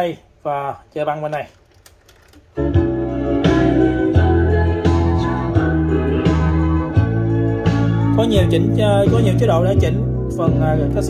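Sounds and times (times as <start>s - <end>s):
keyboard music over speakers: 2.4s - 11.0s.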